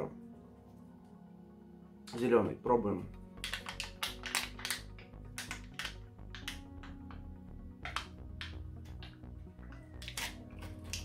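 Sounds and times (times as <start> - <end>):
background music: 0.0 - 11.0
plastic pot clicking and crackling: 3.4 - 11.0.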